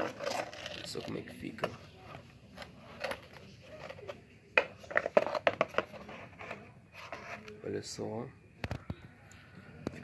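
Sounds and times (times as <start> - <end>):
plastic clicks and scrapes: 0.0 - 7.6.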